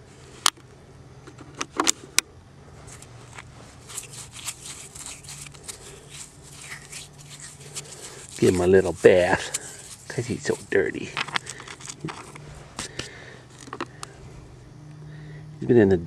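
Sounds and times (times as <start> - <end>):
gravel ticks and rattles: 2.9 - 14.2
stone clicking on stone: 11.1 - 14.1.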